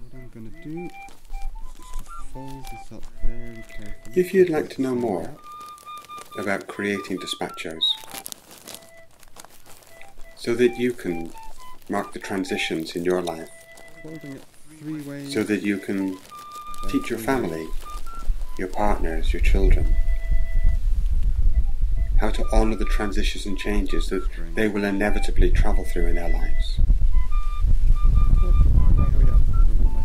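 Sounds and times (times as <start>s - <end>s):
paper crinkling and rustling: 0.6s - 19.9s
wind buffeting microphone: 1.4s - 4.5s, 17.0s - 30.0s.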